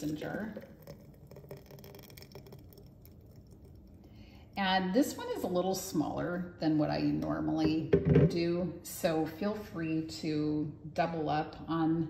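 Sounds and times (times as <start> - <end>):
thick smoothie pouring into jar: 0.0 - 5.6.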